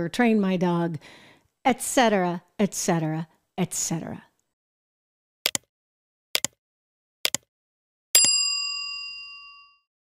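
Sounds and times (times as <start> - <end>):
bell-like ding: 8.2 - 9.9.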